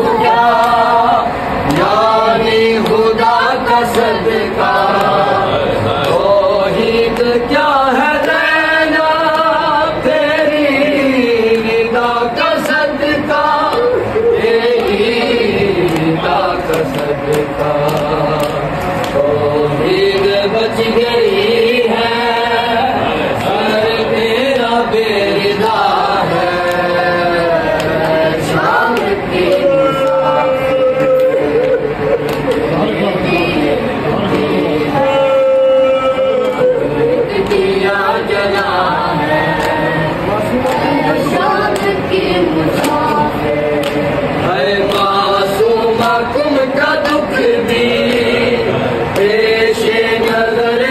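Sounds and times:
men and boys chanting a lament: 0.0 - 50.9.

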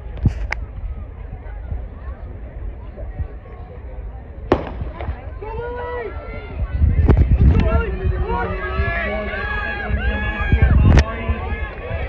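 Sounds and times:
starter's pistol firing: 4.5 - 5.2
spectators yelling and cheering: 4.7 - 12.0.

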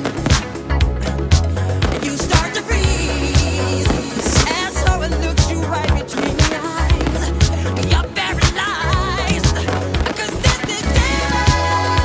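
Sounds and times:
instrumental pop music: 0.0 - 12.0.

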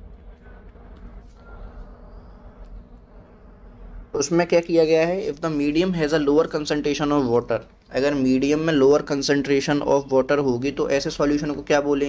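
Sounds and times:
faint low hum and hiss: 0.0 - 12.0.

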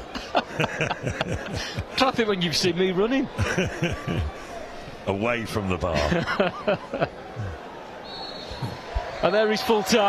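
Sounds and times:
man laughing: 0.1 - 1.9, 5.9 - 7.6.

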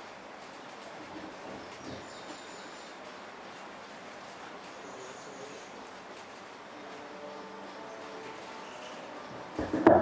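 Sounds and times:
steady background noise: 0.0 - 10.0
thin high tone: 6.7 - 9.6.

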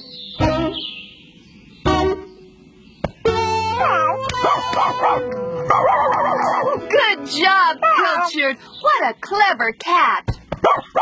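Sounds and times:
background music: 0.0 - 0.9, 1.9 - 2.4, 3.2 - 8.6
cartoon dog barking: 3.8 - 6.9, 10.6 - 11.0.

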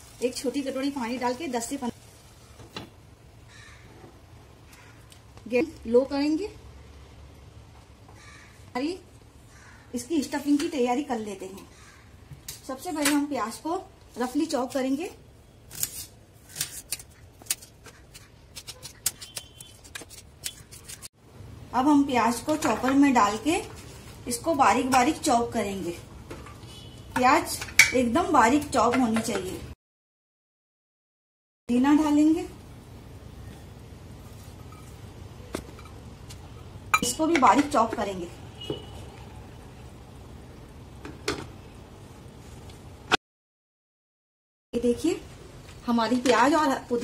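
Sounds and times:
knife cutting onion: 15.7 - 21.1.

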